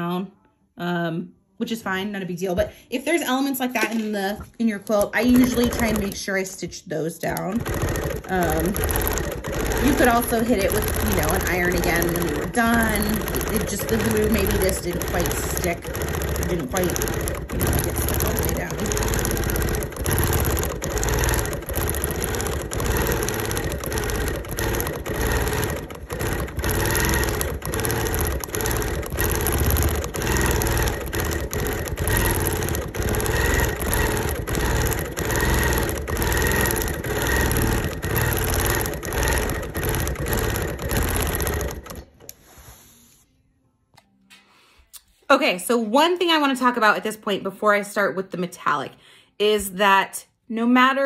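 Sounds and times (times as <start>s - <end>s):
sewing machine stitching: 3.7s - 42.8s.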